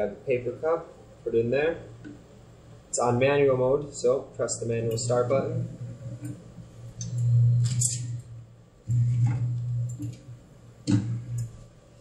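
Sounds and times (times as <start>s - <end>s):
cup sealer motor humming: 7.0s - 11.6s.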